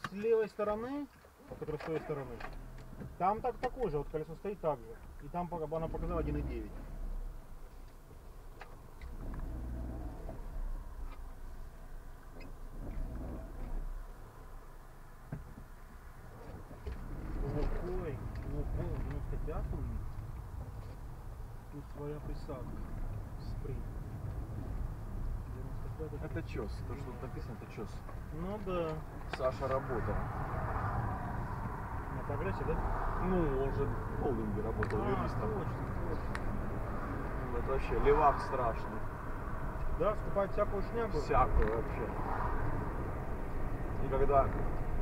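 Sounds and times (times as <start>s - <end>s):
car engine rumble: 0.0s - 45.0s.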